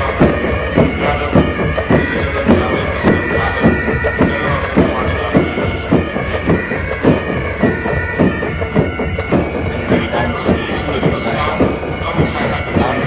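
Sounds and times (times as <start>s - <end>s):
bagpipes playing a march: 0.0s - 13.0s
regular drum beat: 0.0s - 13.0s.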